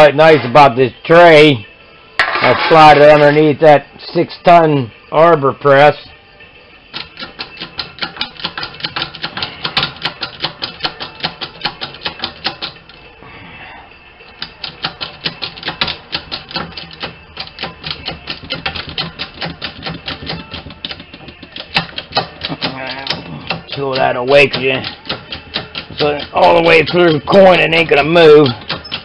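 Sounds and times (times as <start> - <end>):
arbor press ratchet clicking: 21.6 - 27.3.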